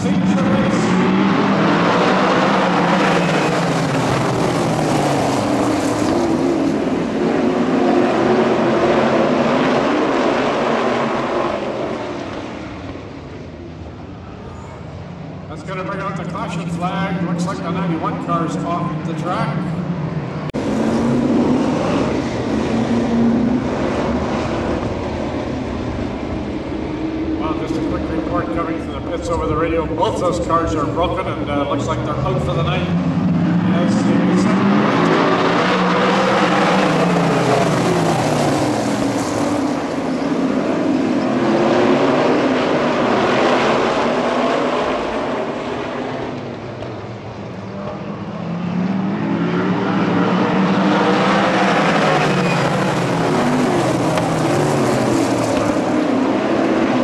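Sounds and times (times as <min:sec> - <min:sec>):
race car engines passing: 0:00.0 - 0:57.0.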